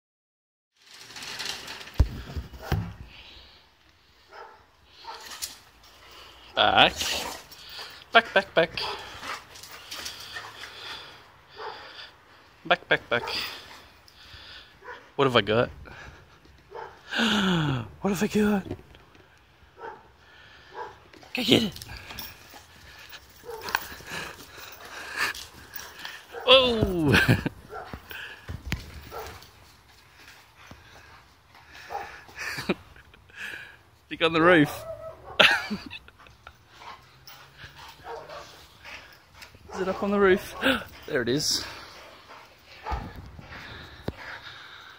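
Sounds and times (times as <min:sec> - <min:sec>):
dogs breathing hard: 0:00.9 - 0:12.6, 0:13.2 - 0:15.2, 0:19.1 - 0:26.5, 0:27.2 - 0:34.1, 0:35.3 - 0:44.9
dog panting: 0:07.0 - 0:12.0, 0:36.2 - 0:44.9
dogs jumping and scuffling: 0:21.2 - 0:30.4, 0:37.2 - 0:44.4.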